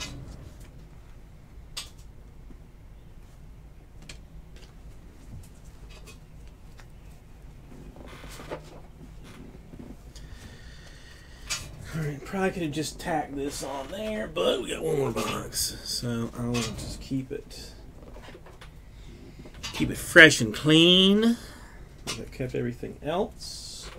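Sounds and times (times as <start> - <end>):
low room hum: 0.0 - 23.9.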